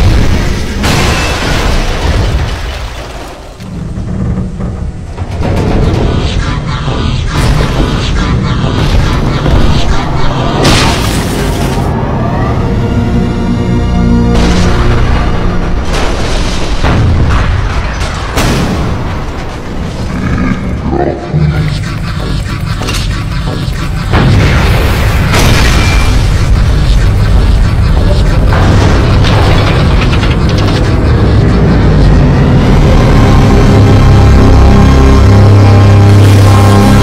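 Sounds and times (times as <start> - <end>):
explosion blast: 0.0 - 3.4, 14.2 - 20.0, 24.0 - 37.0
low rumble: 0.0 - 37.0
music: 11.6 - 16.2
sharp hits: 21.8 - 37.0.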